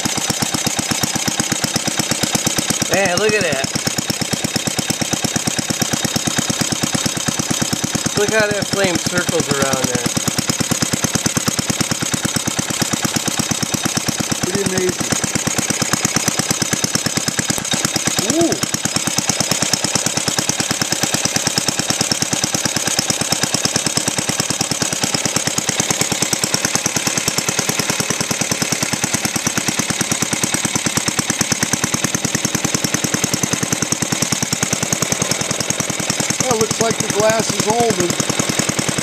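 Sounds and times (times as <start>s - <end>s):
single-cylinder engine running: 0.0s - 39.0s.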